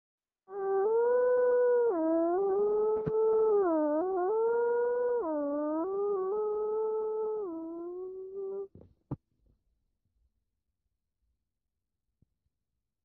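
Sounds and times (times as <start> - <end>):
long howl: 0.5 - 8.7.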